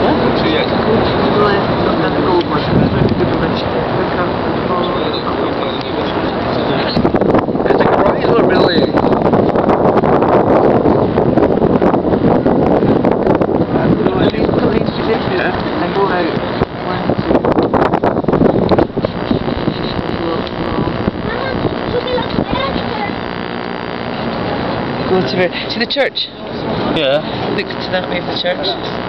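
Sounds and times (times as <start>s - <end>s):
distant hum of city: 0.0s - 29.0s
wind buffeting microphone: 0.0s - 29.0s.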